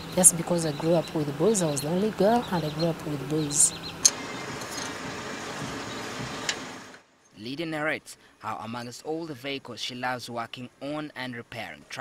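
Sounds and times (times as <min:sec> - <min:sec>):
vehicle engine running: 0:00.0 - 0:07.0.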